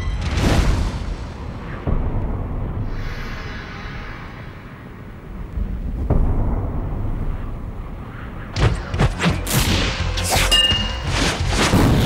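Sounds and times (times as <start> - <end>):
heavy wind-like rumble: 0.0 - 8.9.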